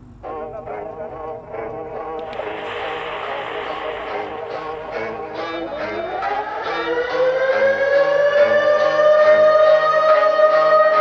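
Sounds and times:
music beat: 0.2 - 11.0
siren winding up: 2.2 - 11.0.

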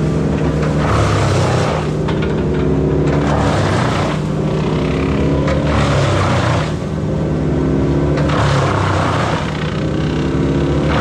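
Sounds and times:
diesel engine running hard: 0.0 - 11.0
hydraulic grapple lifting brush: 0.0 - 11.0.

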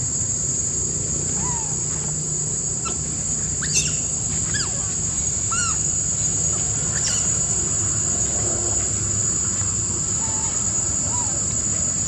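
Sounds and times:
high-pitched insect drone: 0.0 - 12.0
baby monkey squeaky calls: 3.6 - 5.9, 6.8 - 7.4.

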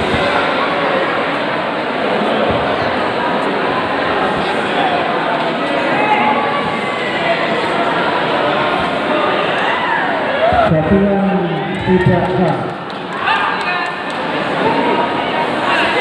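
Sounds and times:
crowd shouting and cheering: 0.0 - 16.0
man's voice: 10.5 - 12.7.

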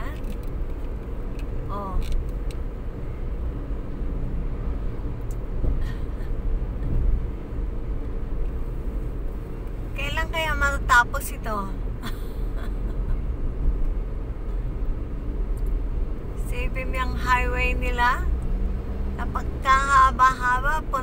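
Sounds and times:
car road rumble: 0.0 - 21.0.

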